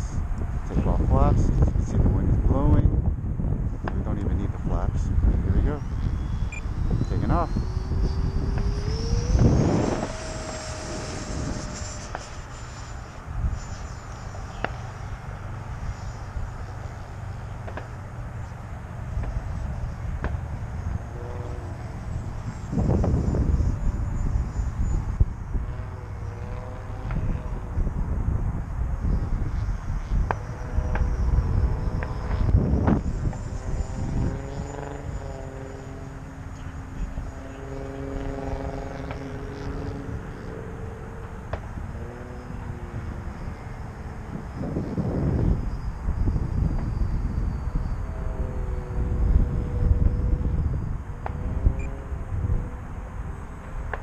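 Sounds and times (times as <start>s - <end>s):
model jet whine: 0.0s - 54.0s
wind buffeting microphone: 0.0s - 54.0s.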